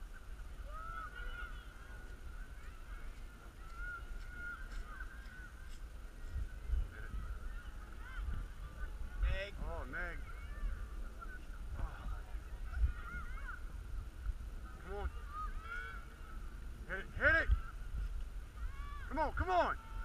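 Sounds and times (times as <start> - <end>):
distant bird calls: 0.0 - 9.3, 10.2 - 19.1
wind rumble on microphone: 0.0 - 20.0.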